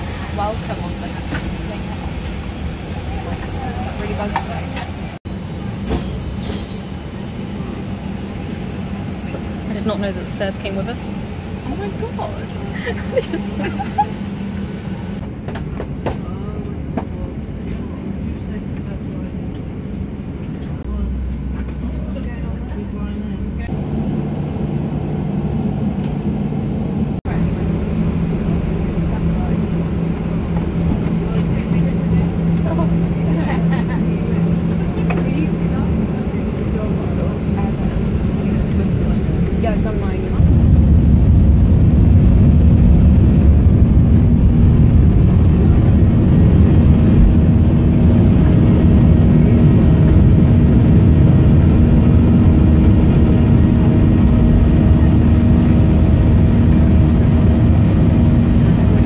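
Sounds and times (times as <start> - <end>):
airliner engines roaring: 0.0 - 59.0.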